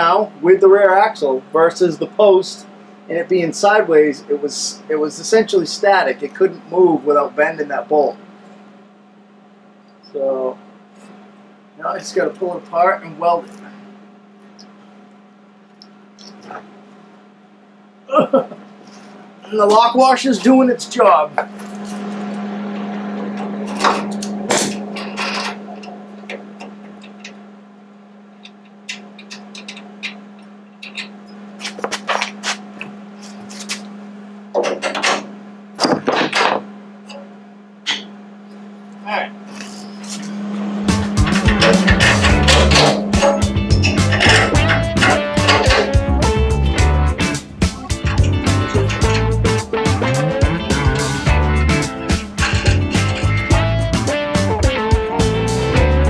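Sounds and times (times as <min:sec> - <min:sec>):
steady low hum: 0:00.0 - 0:56.0
wrench metal clicks: 0:28.4 - 0:31.2
loud guitar music: 0:40.6 - 0:56.0.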